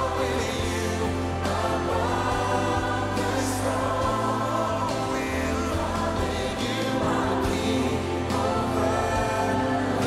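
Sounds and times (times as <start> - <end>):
gospel choir singing: 0.0 - 10.0
sustained low bass notes: 0.0 - 10.0.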